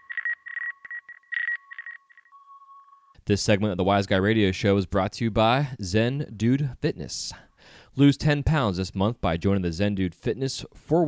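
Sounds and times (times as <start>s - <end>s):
high beep tone: 0.0s - 3.1s
fainter lower tone: 0.0s - 3.2s.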